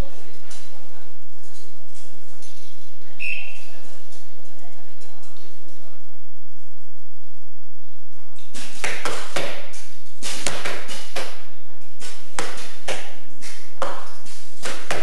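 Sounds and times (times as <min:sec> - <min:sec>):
arrows striking targets: 0:08.5 - 0:15.0.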